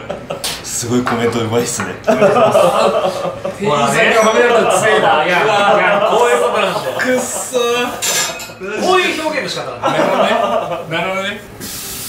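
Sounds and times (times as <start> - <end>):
men talking and chuckling: 0.0 - 11.5
plates and utensils clinking: 3.8 - 10.7.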